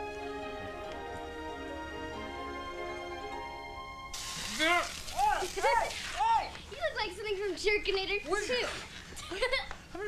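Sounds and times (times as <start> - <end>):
background music: 0.0 - 5.1.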